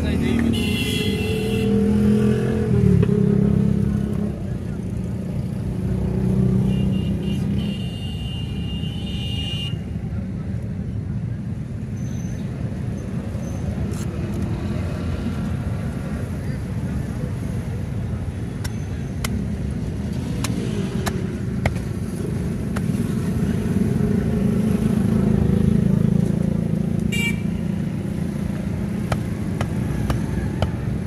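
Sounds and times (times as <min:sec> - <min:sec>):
road traffic rumble: 0:00.0 - 0:31.0.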